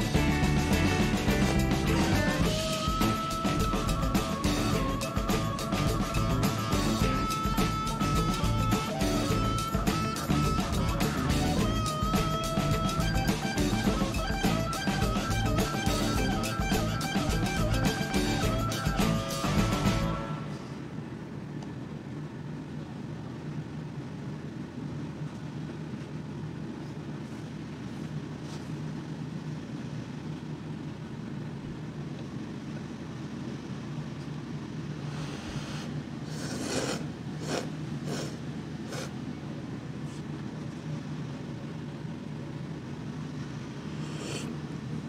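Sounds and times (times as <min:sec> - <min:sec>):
low background hum: 0:00.0 - 0:45.0
person slurping noodles: 0:35.1 - 0:39.2, 0:43.9 - 0:44.6.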